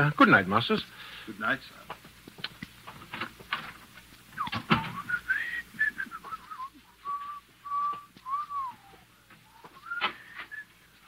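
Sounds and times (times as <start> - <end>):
person whistling a tune: 4.4 - 10.8.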